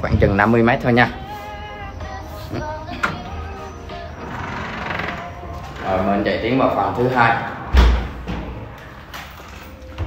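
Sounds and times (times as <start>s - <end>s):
background music with held notes: 0.2s - 10.0s.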